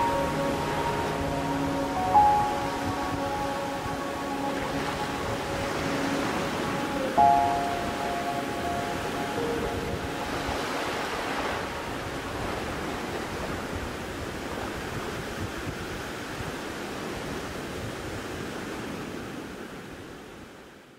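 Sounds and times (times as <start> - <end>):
ocean surf breaking: 0.0 - 20.0.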